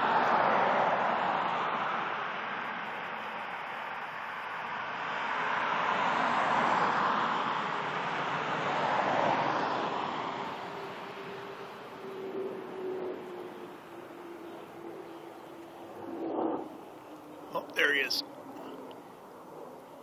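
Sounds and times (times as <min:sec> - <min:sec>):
jet engine rush overhead: 0:00.0 - 0:20.0.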